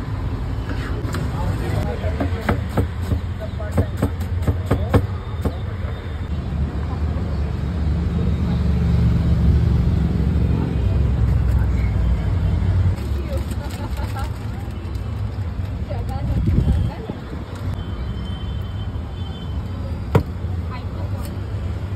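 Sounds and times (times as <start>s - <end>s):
road vehicle passing: 6.4s - 14.7s.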